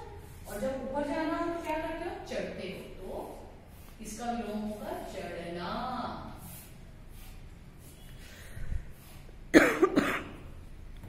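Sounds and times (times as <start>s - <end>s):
person coughing: 9.5s - 10.5s.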